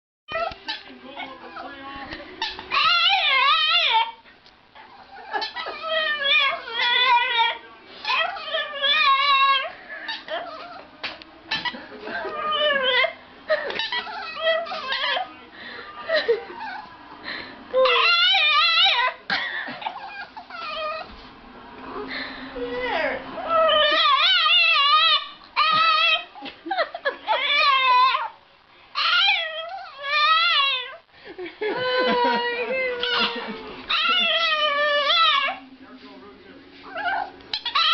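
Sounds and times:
dog yowling and whining: 2.5 - 4.2, 4.9 - 10.9, 12.3 - 13.2, 13.8 - 15.3, 17.8 - 19.2, 19.8 - 21.1, 22.6 - 26.4, 27.2 - 28.4, 29.0 - 31.0, 32.0 - 35.6, 36.9 - 37.9.

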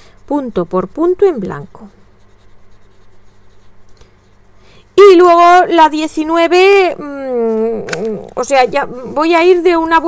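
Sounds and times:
felt-tip pen scratching on paper: 0.0 - 5.6.

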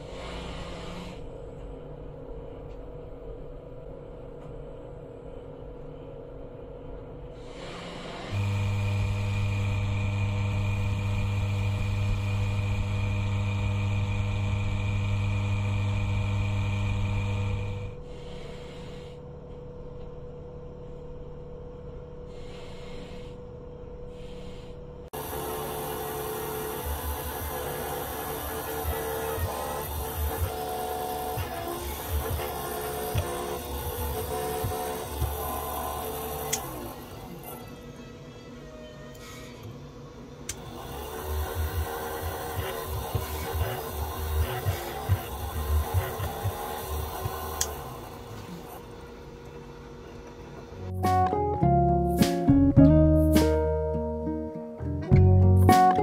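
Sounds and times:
drill press drilling resin: 0.0 - 1.3, 7.4 - 19.1, 24.1 - 50.8
polishing machine motor humming: 7.9 - 18.0, 25.2 - 37.4, 40.5 - 50.9.

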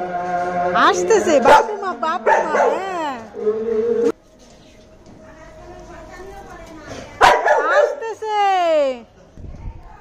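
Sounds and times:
dog yelping bark: 1.5 - 3.0, 7.2 - 8.1.

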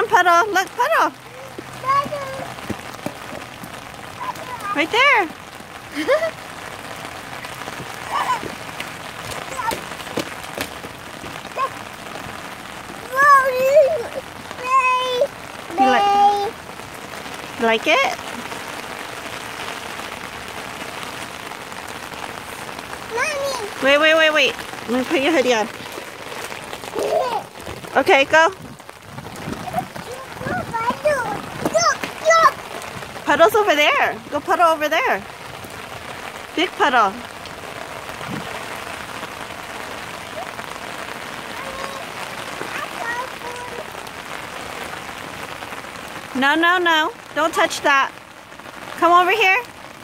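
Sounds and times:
rain on concrete and grass: 0.0 - 50.0.

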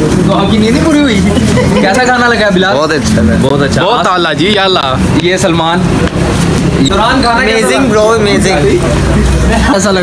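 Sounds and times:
people talking: 0.0 - 6.1, 6.7 - 10.0.

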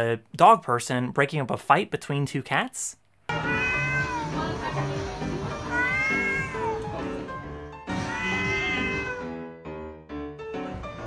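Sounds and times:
cats yowling: 3.3 - 4.6, 5.6 - 7.2, 7.9 - 9.3
background music: 3.3 - 11.0.

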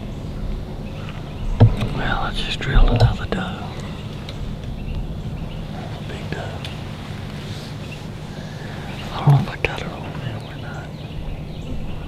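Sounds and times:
man whispering: 1.9 - 4.0, 5.7 - 7.7, 8.3 - 11.0.

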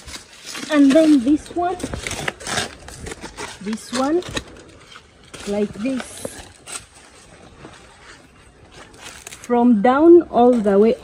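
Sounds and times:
dry plant fibres rustling and scraping: 0.0 - 11.0
knife rasp: 2.0 - 4.1.

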